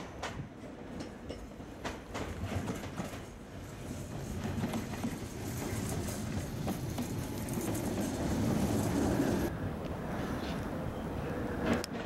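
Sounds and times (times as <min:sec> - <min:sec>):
train wheels clicking on rail joints: 0:00.0 - 0:09.5, 0:11.6 - 0:12.0
low train rumble: 0:00.0 - 0:12.0.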